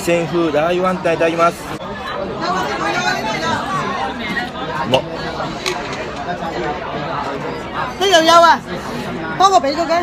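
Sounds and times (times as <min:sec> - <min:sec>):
chatter of many diners: 0:00.0 - 0:10.0.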